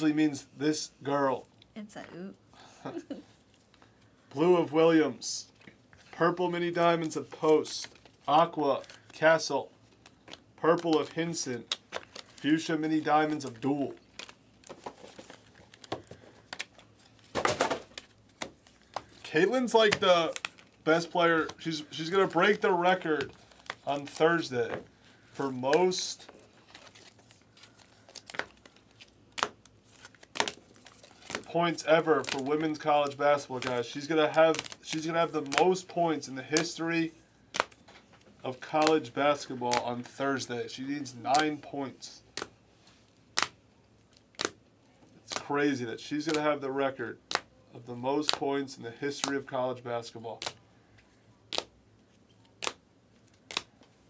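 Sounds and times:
plastic card sleeves rustling: 3.0 - 54.0.

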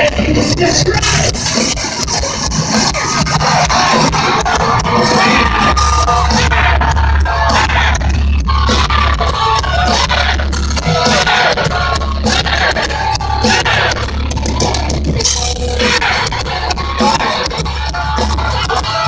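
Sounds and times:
heavy bass: 0.0 - 19.0
live industrial metal band: 0.0 - 19.0
vocals: 0.0 - 19.0.

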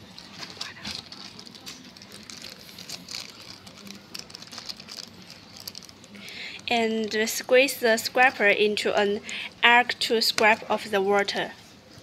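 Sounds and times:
plastic sheet crinkling: 0.0 - 6.4.

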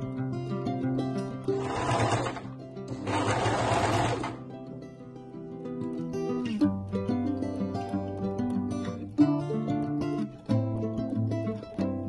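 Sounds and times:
sewing machine stitching: 1.5 - 4.4.

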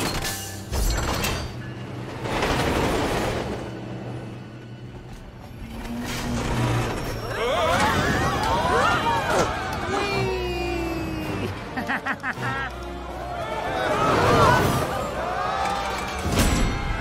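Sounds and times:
film music: 0.0 - 17.0
train rushing along track: 1.3 - 10.5
passengers yelling and screaming: 7.0 - 11.8, 12.6 - 17.0.

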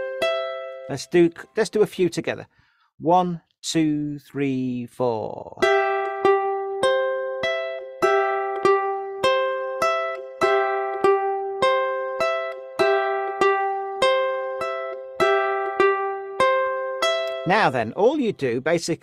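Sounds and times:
ukulele fingerpicking: 0.0 - 1.5, 5.6 - 18.4.

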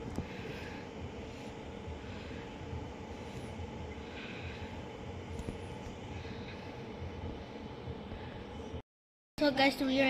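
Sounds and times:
faint steady hum: 0.0 - 8.8.

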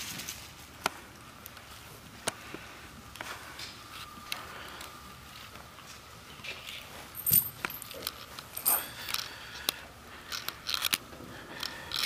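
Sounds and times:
horse tack clinking and rattling: 6.4 - 9.3.

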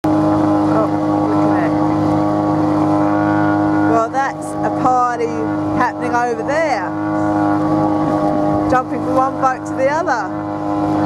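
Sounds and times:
boat engine running: 0.0 - 11.0.

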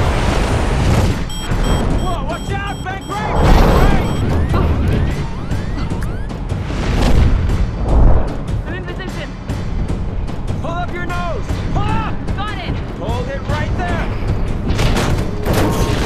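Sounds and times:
dramatic music: 0.1 - 16.0.

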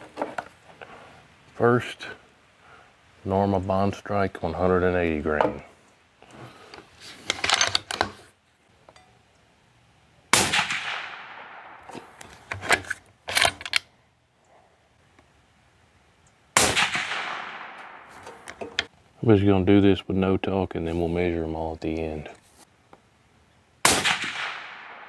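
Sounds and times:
suppressed rifle shots: 10.3 - 12.2, 16.6 - 18.5, 23.8 - 25.0
rifle bolt metallic clicks: 11.7 - 13.9.

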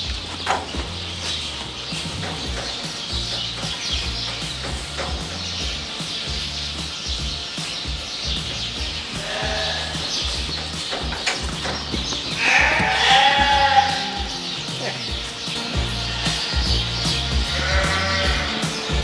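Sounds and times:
music with bass beat: 0.0 - 19.0
sheep bleating: 9.0 - 10.4, 12.3 - 18.9.

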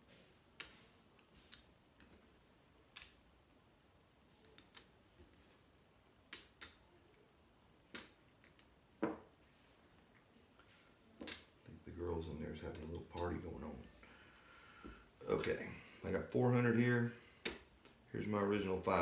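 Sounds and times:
chips clicking together: 4.4 - 5.0, 6.3 - 6.8, 11.2 - 11.6.

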